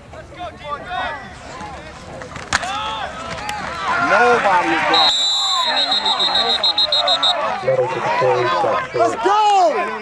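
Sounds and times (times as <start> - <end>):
people shouting: 2.6 - 9.8
shrill referee whistle: 4.9 - 7.5.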